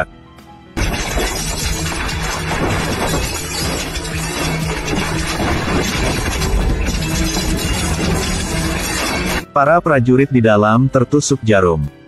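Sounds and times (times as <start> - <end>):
background music: 0.0 - 12.0
debris crashing: 0.8 - 9.4
explosion: 0.8 - 9.4
glass shattering: 0.8 - 9.4.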